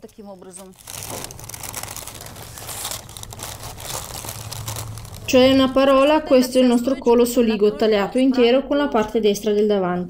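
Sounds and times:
paper crinkling and rustling: 0.4 - 5.9.

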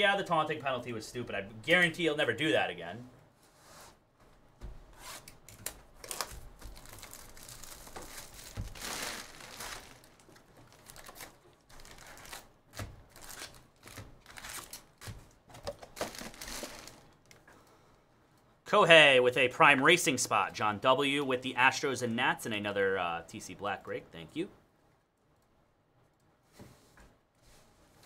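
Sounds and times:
foil packs crinkling: 5.6 - 17.4.

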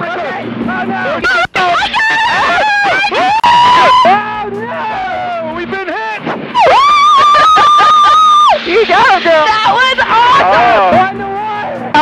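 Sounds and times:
woman shouting and screaming: 1.3 - 4.2, 6.6 - 8.6.

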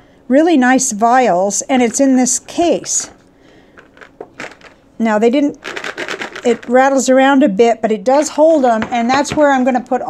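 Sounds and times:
plastic vials clicking and rattling: 3.8 - 4.8, 5.6 - 6.8.

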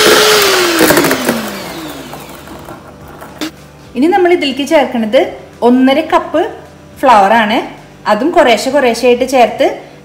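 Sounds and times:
electric hand mixer winding down: 0.0 - 3.5
mixer beating batter in steel bowl: 0.0 - 3.5.

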